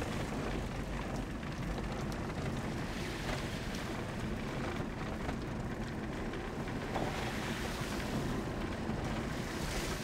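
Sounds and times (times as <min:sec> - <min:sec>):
vehicle engine and road noise: 0:00.0 - 0:10.0.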